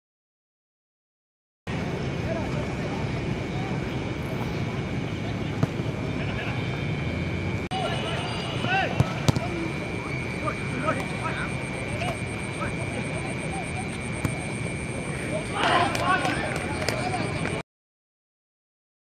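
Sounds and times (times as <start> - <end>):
faint high whine: 1.7 - 17.6
distant shouts of players: 7.7 - 17.6.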